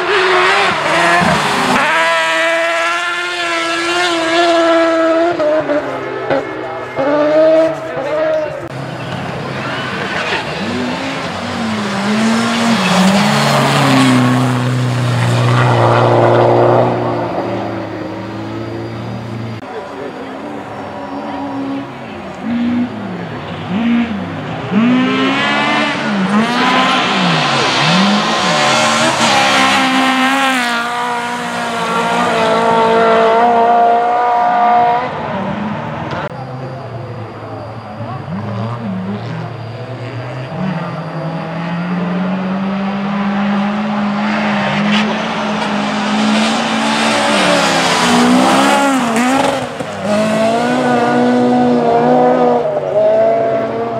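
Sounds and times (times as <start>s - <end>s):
rally car engine at full throttle: 0.0s - 53.9s.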